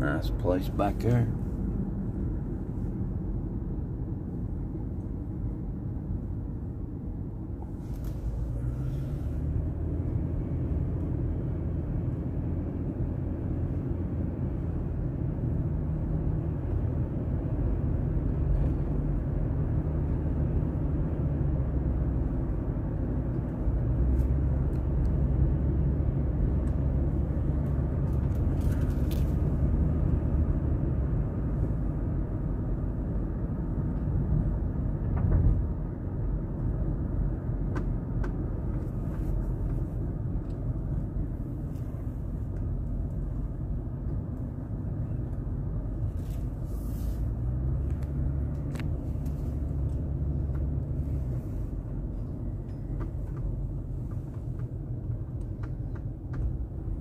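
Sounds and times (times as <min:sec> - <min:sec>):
car engine and tyres rumbling: 0:00.0 - 0:57.0.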